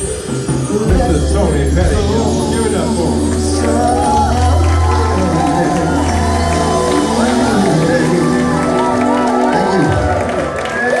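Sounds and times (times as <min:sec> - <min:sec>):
live band and singers performing: 0:00.0 - 0:11.0
audience cheering: 0:02.6 - 0:11.0.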